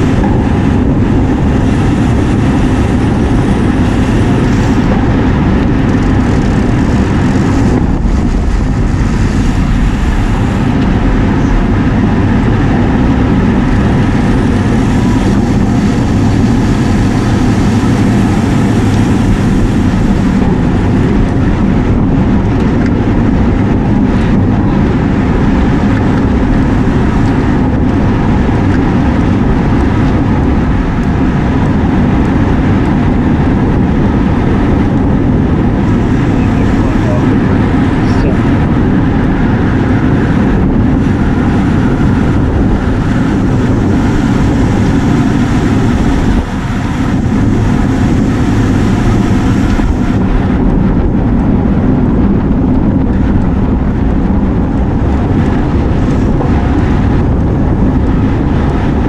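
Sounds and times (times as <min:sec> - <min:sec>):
wind rumble on microphone: 0:00.0 - 0:59.0.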